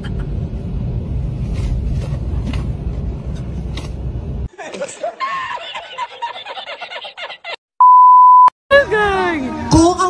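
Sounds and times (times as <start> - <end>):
vehicle interior rumble: 0.0 - 4.5
man laughing hard: 4.5 - 7.6.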